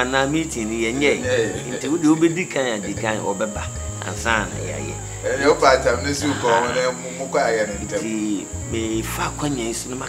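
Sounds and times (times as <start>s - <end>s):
high-pitched whine: 0.0s - 10.0s
man talking: 0.0s - 10.0s.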